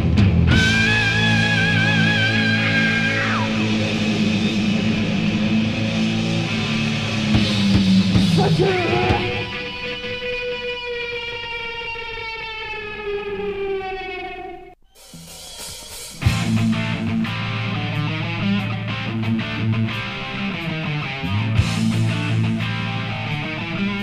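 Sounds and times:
distorted guitar riff: 0.0s - 24.0s
held electric guitar note: 8.2s - 14.7s.

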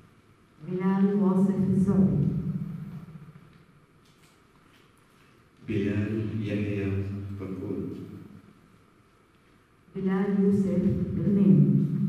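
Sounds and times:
man reading aloud: 5.6s - 8.3s.

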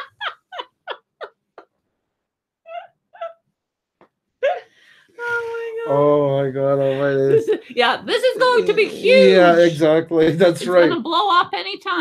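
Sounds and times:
woman laughing: 0.0s - 1.7s, 2.7s - 3.4s, 4.4s - 4.6s, 6.8s - 9.7s.

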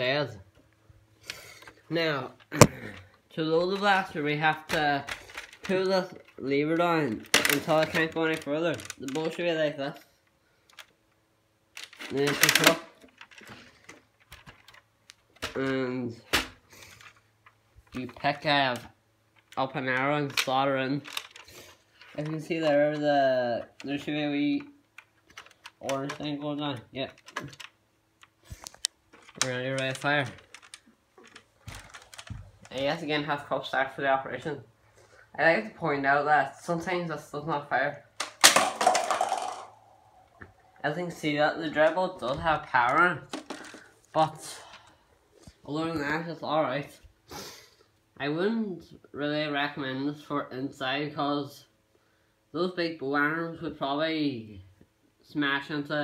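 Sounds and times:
foam arrow clattering on floor: 38.2s - 39.8s.

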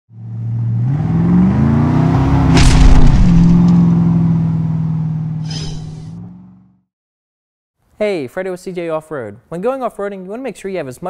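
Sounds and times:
engine revving: 0.1s - 6.8s
sharp crash: 2.5s - 3.8s, 5.4s - 6.1s
brief hiss: 5.4s - 6.0s.

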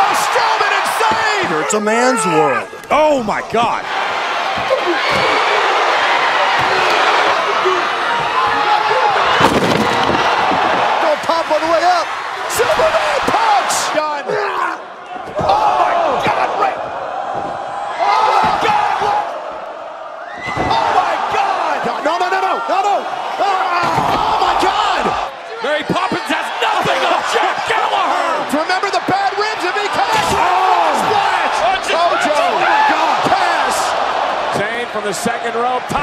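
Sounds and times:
excited shouting voices: 0.0s - 36.0s
loud crowd: 0.0s - 36.0s
wrestlers slamming onto ring: 9.2s - 11.0s.

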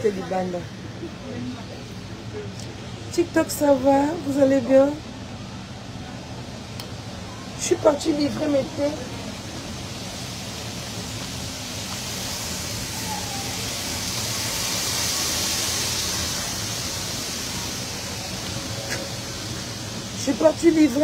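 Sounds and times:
train running rumble inside carriage: 0.0s - 21.0s.

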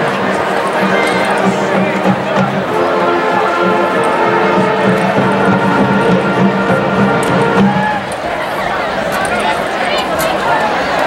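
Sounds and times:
marching band playing chords: 0.0s - 8.4s
crowd noise: 0.0s - 11.0s.

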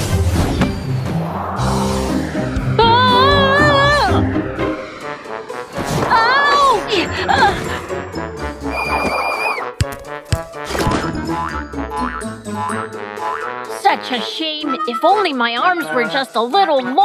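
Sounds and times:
bouncy children's music: 9.5s - 17.0s.

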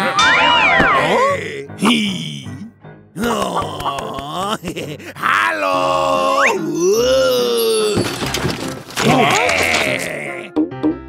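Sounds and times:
cartoon voice grunting and groaning: 1.0s - 7.9s.

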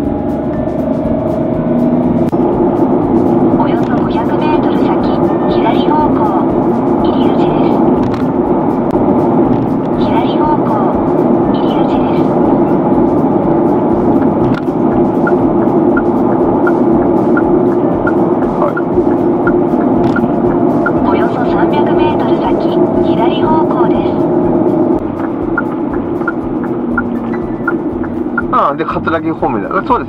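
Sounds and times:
car road and engine noise: 0.0s - 30.0s
music with ticking beat: 0.0s - 30.0s.

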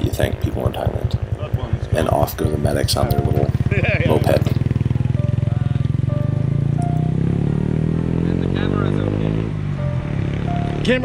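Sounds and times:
moped engine accelerating: 0.0s - 11.0s.

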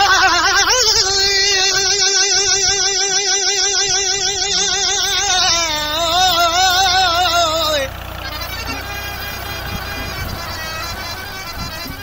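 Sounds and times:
folk singer holding high note: 3.8s - 12.0s.

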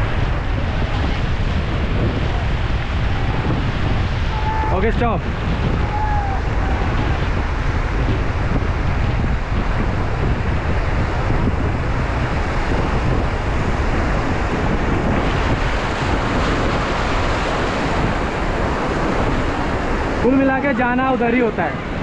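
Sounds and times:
river water rushing: 0.0s - 22.0s
wind buffeting microphone: 0.0s - 22.0s.

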